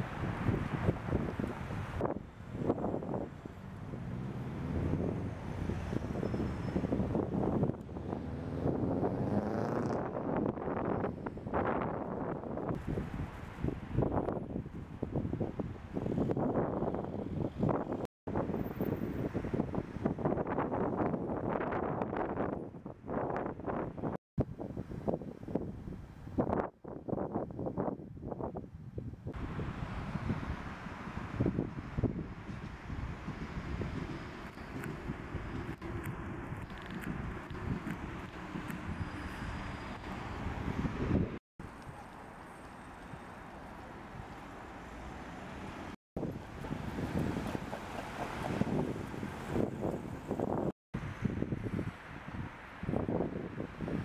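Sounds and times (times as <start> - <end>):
wind buffeting microphone: 0.0 - 41.4, 45.8 - 54.0
street traffic: 0.0 - 54.0.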